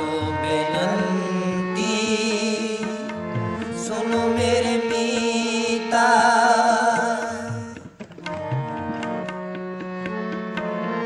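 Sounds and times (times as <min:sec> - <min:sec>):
chanted vocal line: 0:00.0 - 0:07.8
harmonium sustained chord: 0:00.0 - 0:07.8, 0:08.4 - 0:11.0.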